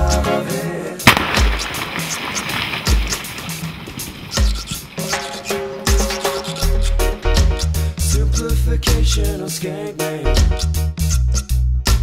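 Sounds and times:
reggae music with bass beat: 0.0 - 12.0
rock blasting explosion: 1.0 - 4.3.

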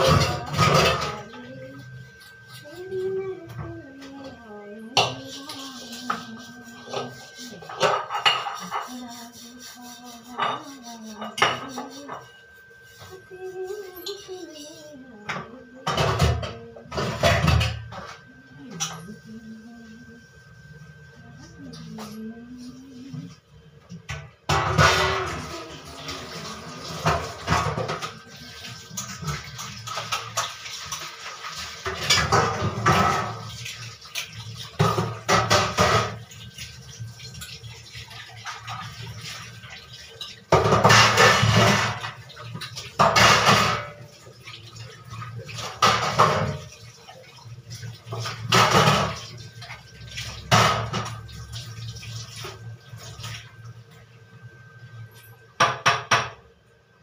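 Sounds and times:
pots and utensils clattering: 0.0 - 19.2, 21.7 - 54.0, 54.6 - 56.5
tap water running in bursts: 0.0 - 19.8, 21.2 - 56.5
background running water: 0.0 - 57.0.

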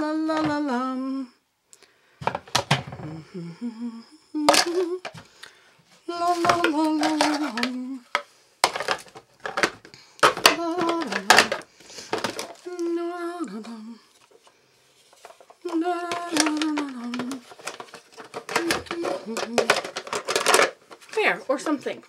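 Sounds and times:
woman singing wordless phrases: 0.0 - 1.4, 3.0 - 5.2, 6.0 - 8.2, 10.4 - 11.6, 12.5 - 14.1, 15.6 - 17.5, 18.5 - 19.8
kitchen items clicking and knocking: 2.2 - 3.0, 4.5 - 5.3, 6.3 - 12.6, 15.2 - 22.0.

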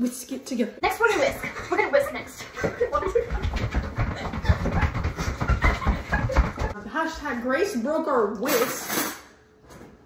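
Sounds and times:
thumps and knocks: 2.6 - 6.8.

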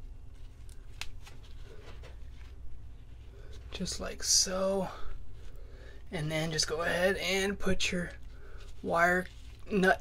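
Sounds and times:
gloved hands rustling wires: 0.0 - 7.4, 8.0 - 10.0
low steady rumble: 0.0 - 10.0.

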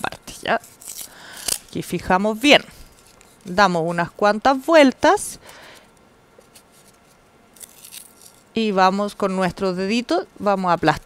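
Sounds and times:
masking tape being unrolled: 0.6 - 1.8, 6.4 - 8.6.

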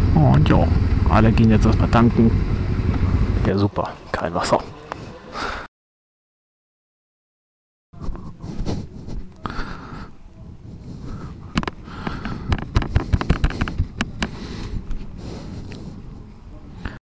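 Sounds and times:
handling knocks and thumps: 11.5 - 14.3.

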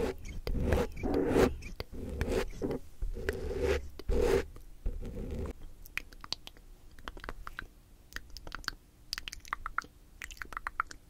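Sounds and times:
plastic object rasping scrape: 0.0 - 5.5.

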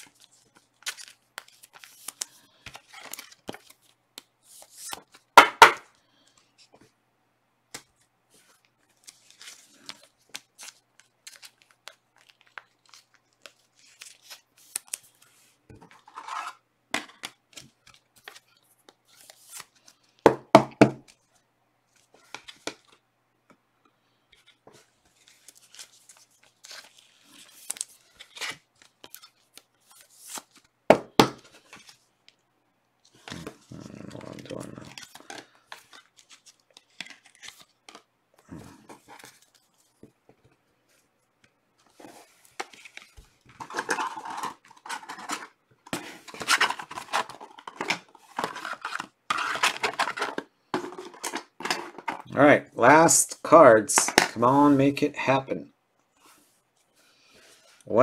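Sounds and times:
plastic crinkling and rustling: 41.8 - 52.4.

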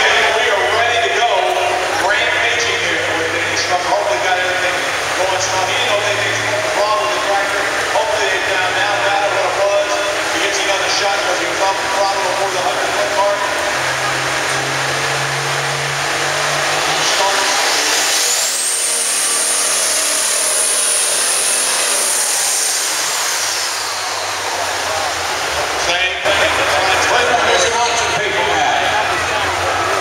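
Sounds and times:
arena crowd noise: 0.0 - 30.0
tractor engine running: 0.0 - 30.0
turbocharger whine: 0.0 - 30.0.

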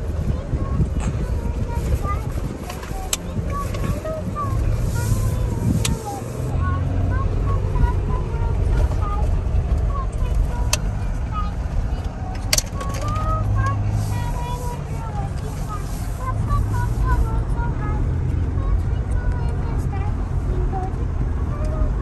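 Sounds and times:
engine and tyres rumbling: 0.0 - 22.0.

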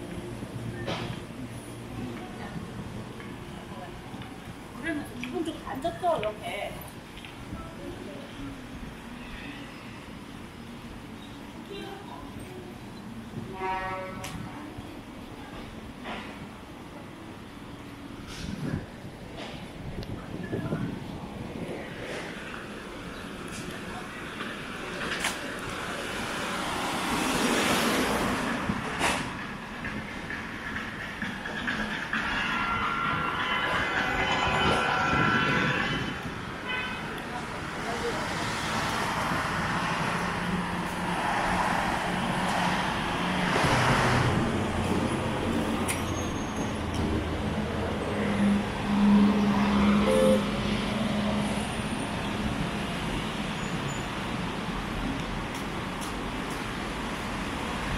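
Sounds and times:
traffic passing: 0.0 - 57.9
voices of passers-by: 0.0 - 57.9.

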